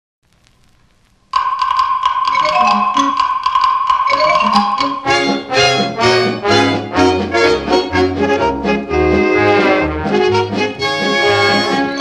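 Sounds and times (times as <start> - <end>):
vinyl record crackle: 0.2 - 1.4
instrumental song introduction: 1.4 - 12.0.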